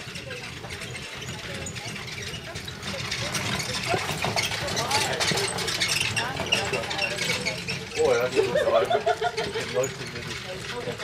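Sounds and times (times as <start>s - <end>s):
people talking: 0.0s - 11.0s.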